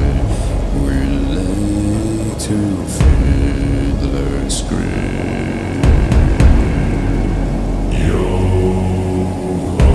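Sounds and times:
music: 0:00.0 - 0:09.9.

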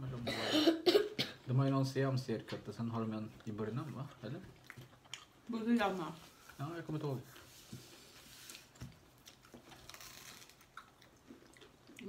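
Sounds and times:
people chewing food: 0:01.4 - 0:12.0.

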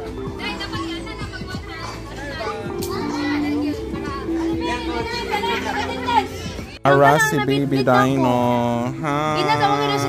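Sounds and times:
background music: 0:00.0 - 0:10.0
children calling out: 0:00.6 - 0:06.7.

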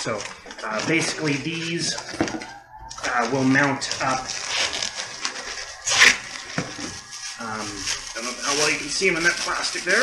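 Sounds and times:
plastic wrap and paper crinkling: 0:00.0 - 0:10.0.

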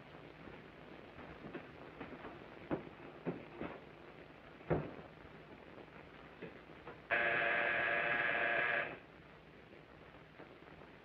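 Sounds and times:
electric buzzer: 0:07.1 - 0:09.0.

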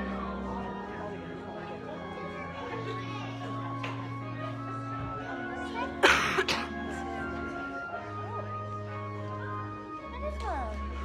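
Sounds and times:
music of sustained held notes: 0:00.0 - 0:11.0
person coughing: 0:06.0 - 0:06.9.

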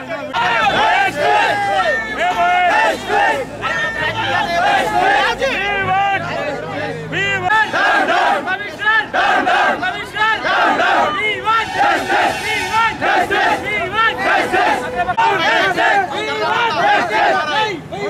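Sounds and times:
crowd shouting slogans: 0:00.0 - 0:18.0.

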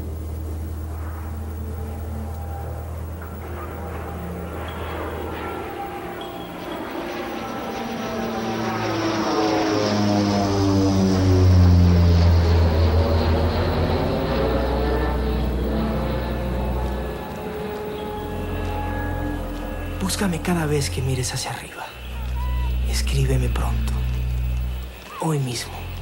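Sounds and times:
propeller airplane engine drone: 0:00.0 - 0:26.0.

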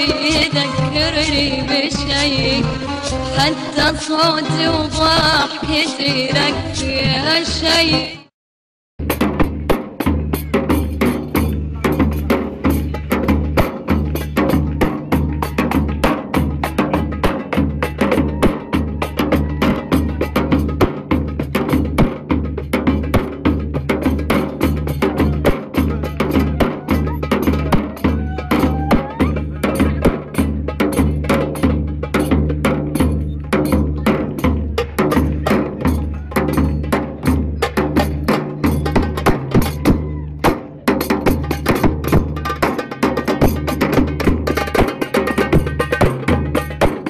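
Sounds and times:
bass drum and frame drum beating: 0:09.0 - 0:47.0.

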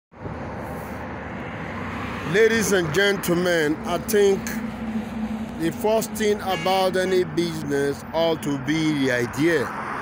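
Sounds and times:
highway traffic roar: 0:00.1 - 0:10.0.

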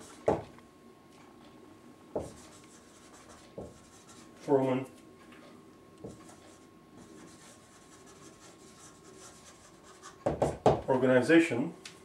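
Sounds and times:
marker scratching on whiteboard: 0:00.0 - 0:00.4, 0:02.2 - 0:04.5, 0:06.1 - 0:10.5
marker knocking on board: 0:03.6 - 0:03.9, 0:10.2 - 0:10.9.

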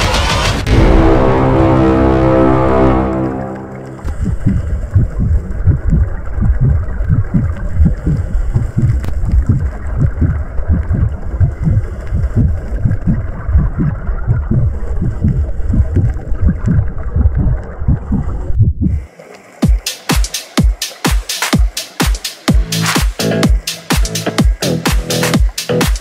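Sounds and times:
underwater exhaled bubbles rumbling: 0:03.5 - 0:19.1.

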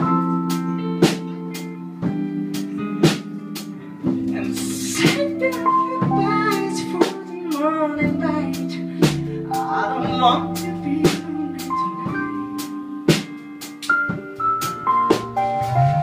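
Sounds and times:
electric guitar chords: 0:00.0 - 0:16.0
keyboard: 0:00.0 - 0:16.0
wavering melody line: 0:09.4 - 0:13.1.

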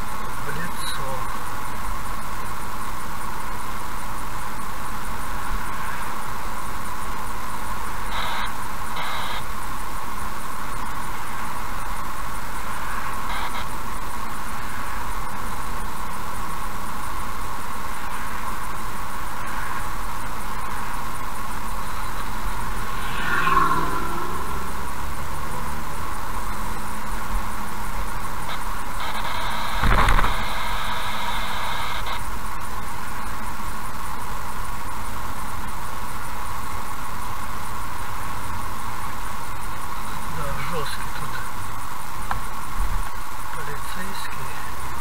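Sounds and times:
car road and engine noise: 0:00.0 - 0:45.0
vehicle passing: 0:20.6 - 0:28.1.

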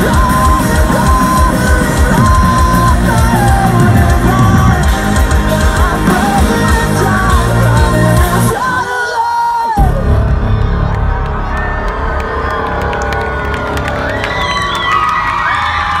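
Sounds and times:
live metal band playing: 0:00.0 - 0:15.5.

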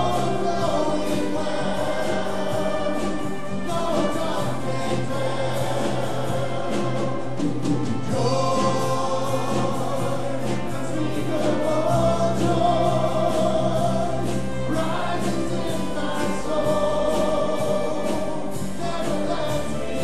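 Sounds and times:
congregation singing: 0:00.0 - 0:20.0.

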